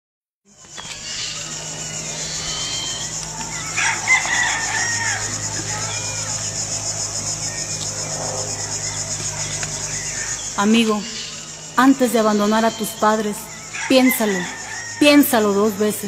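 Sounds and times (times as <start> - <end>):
crickets chirping: 0.5 - 16.0
low steady hum: 0.6 - 16.0
rooster crowing: 1.2 - 7.7, 13.5 - 15.9.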